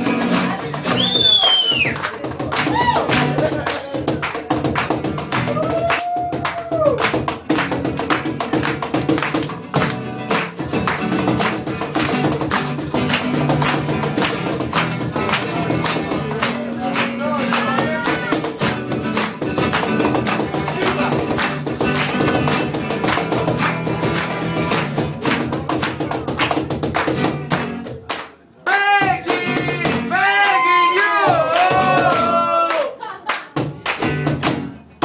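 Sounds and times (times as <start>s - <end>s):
acoustic guitar strumming: 0.0s - 5.6s, 6.2s - 28.0s, 29.0s - 30.5s, 33.6s - 35.0s
cajon slapping: 0.0s - 30.6s, 31.2s - 35.0s
person singing: 15.3s - 18.7s, 28.7s - 33.0s.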